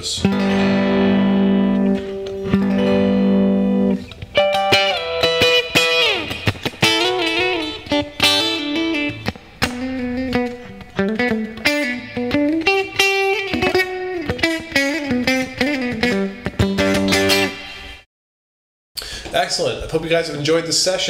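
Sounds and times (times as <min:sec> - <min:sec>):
clean electric guitar playing: 0:00.0 - 0:18.0.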